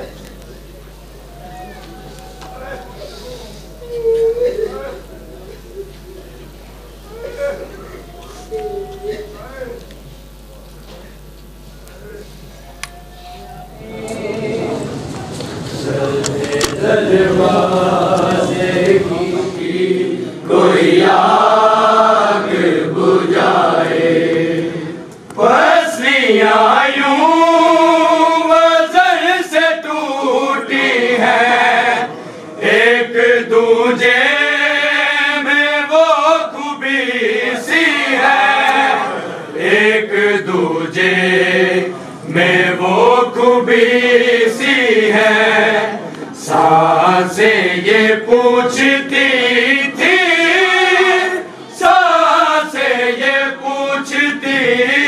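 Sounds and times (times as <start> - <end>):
men chanting a lament: 13.0 - 55.0.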